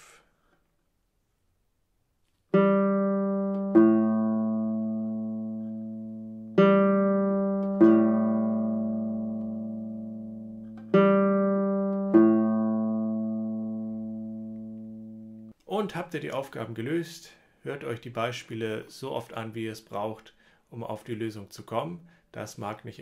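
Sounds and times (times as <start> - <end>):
classical guitar plucked notes: 2.5 - 15.5.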